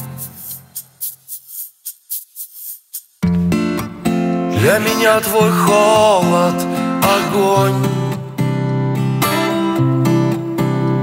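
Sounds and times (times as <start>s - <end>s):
shaker rhythm: 0.0s - 3.3s.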